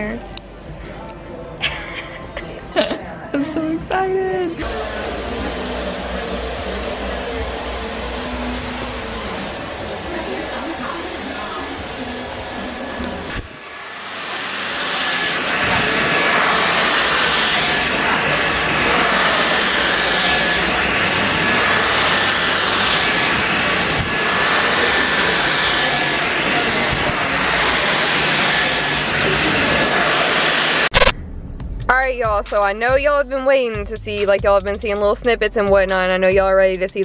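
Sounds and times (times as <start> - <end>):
hair dryer blowing: 4.6 - 31.0.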